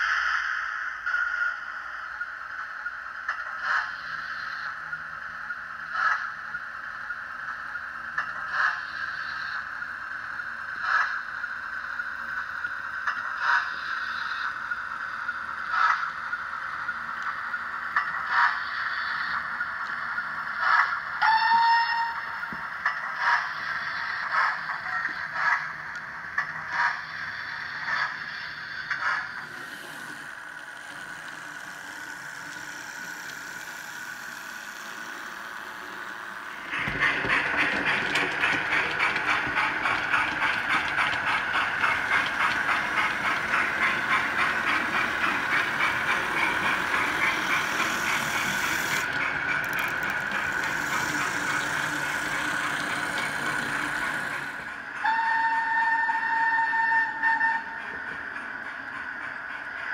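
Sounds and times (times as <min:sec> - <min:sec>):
steam locomotive chugging: 0:00.0 - 0:59.9
two-note steam whistle: 0:21.2 - 0:22.4, 0:55.0 - 0:58.0.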